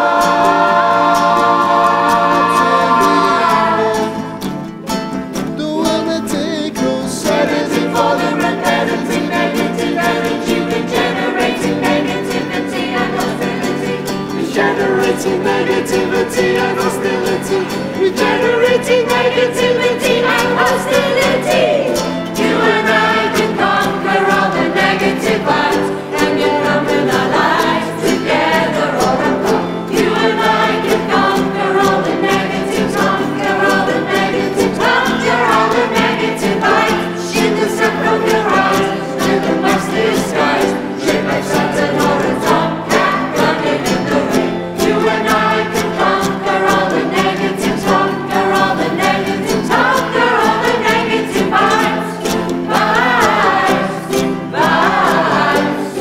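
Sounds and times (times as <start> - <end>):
voices singing in chorus: 0.0 - 4.6, 5.6 - 56.0
strummed ukuleles: 0.0 - 56.0.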